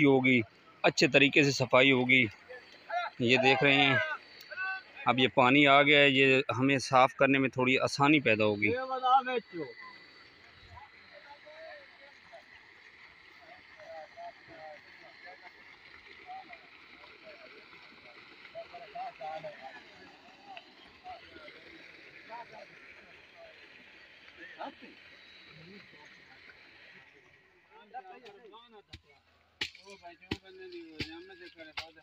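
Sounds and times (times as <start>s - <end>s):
distant men talking: 0.0s - 32.0s
steady outdoor hiss: 0.0s - 32.0s.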